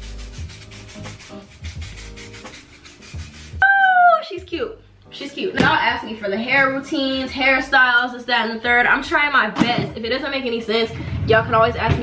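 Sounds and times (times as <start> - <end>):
hands rubbing hair: 0.0 - 3.6
soft background music: 0.0 - 12.0.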